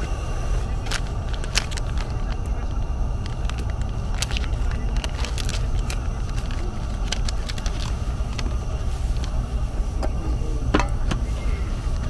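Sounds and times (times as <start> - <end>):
steady low rumble: 0.0 - 12.0
foil packet crinkling and tearing: 0.6 - 9.5.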